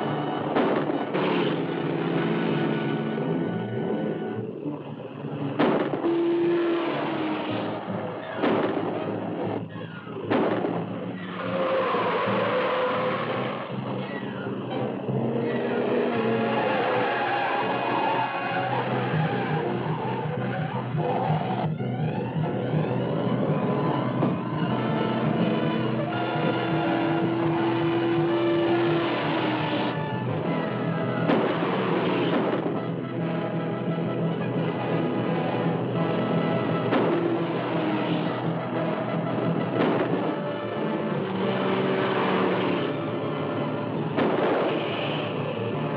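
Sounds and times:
film score music: 0:00.0 - 0:45.9
speeding car engine: 0:00.0 - 0:45.9
tyres skidding: 0:00.0 - 0:45.9.

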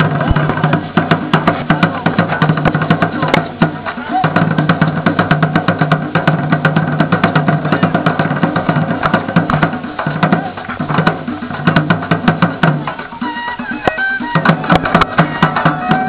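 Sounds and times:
hand drums beaten by palm: 0:00.0 - 0:16.0
large drum beaten with stick: 0:00.0 - 0:16.0.

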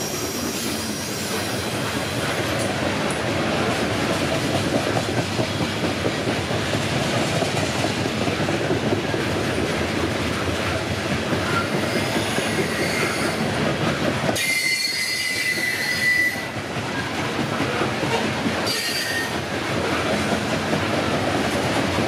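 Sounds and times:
high wheel squeal: 0:00.0 - 0:01.8, 0:11.5 - 0:13.4, 0:14.4 - 0:16.6, 0:18.7 - 0:19.4
train wheels rumbling and clattering: 0:00.0 - 0:22.0.

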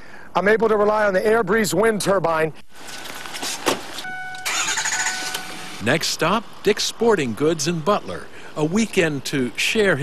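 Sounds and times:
truck engine cranking and starting: 0:02.8 - 0:10.0.

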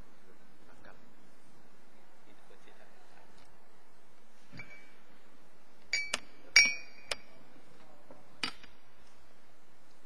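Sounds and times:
sharp clinks of hard object: 0:05.9 - 0:07.3.

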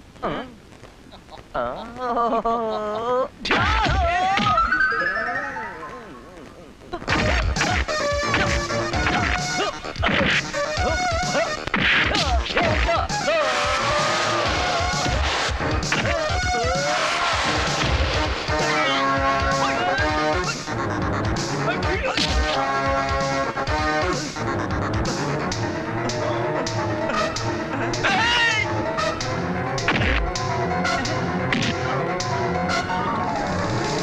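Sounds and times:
film music with steady beat: 0:03.8 - 0:34.0
long held music tone: 0:04.6 - 0:06.9.

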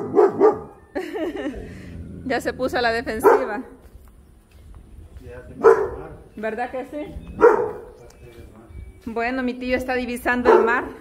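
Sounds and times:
dog barking: 0:00.0 - 0:00.8, 0:03.2 - 0:03.8, 0:05.6 - 0:06.1, 0:07.4 - 0:08.0, 0:10.4 - 0:11.0.

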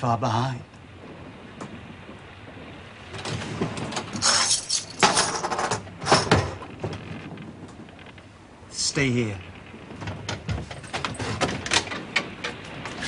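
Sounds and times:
clattering rattling noises: 0:03.0 - 0:08.3, 0:09.5 - 0:13.0.

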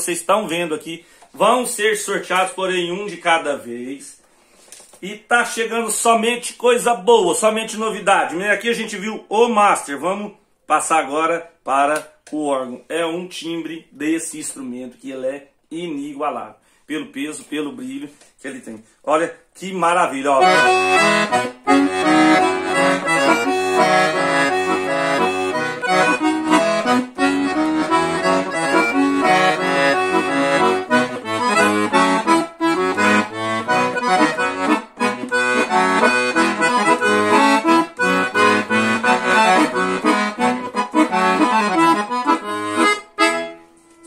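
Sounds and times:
accordion melody: 0:00.0 - 0:04.1, 0:19.8 - 0:44.0.

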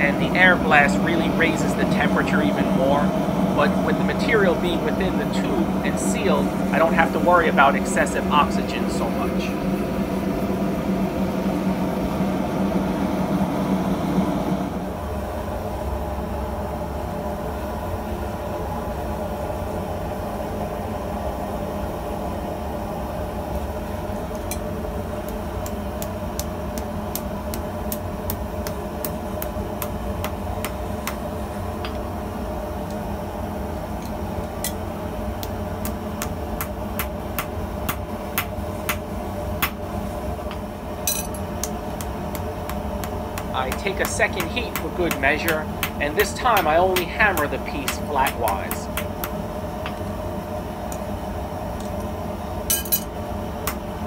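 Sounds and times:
forge blower humming: 0:00.0 - 0:54.0
hammer striking metal on anvil: 0:41.1 - 0:41.7, 0:43.4 - 0:49.1, 0:52.7 - 0:53.1.

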